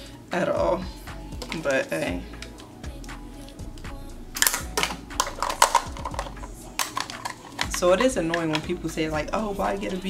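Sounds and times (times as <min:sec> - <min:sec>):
faint background music: 0:00.0 - 0:10.0
small objects clicking and clattering: 0:04.4 - 0:08.6.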